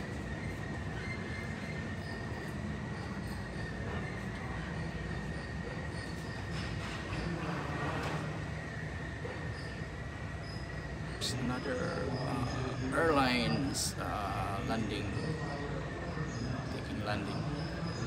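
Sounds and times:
jet engine whine and rumble: 0.0 - 18.0.

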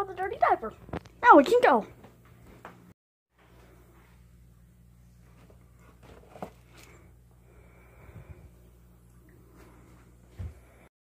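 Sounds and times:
steady low hum: 1.8 - 10.9.

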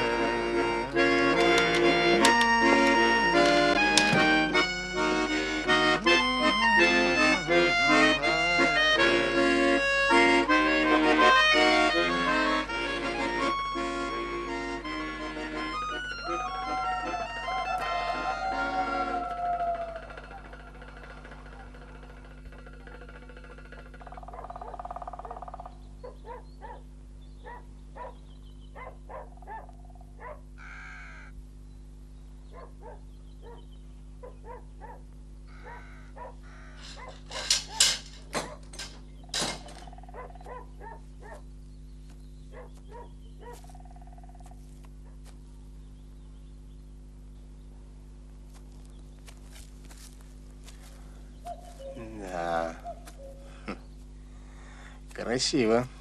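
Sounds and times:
accordion playing lively tune: 0.0 - 21.0, 51.7 - 53.8
scattered short sounds: 35.5 - 40.0.

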